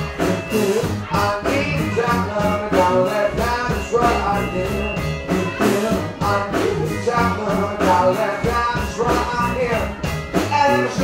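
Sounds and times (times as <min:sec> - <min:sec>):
drum kit beat: 0:00.0 - 0:11.0
live rock band playing: 0:00.0 - 0:11.0.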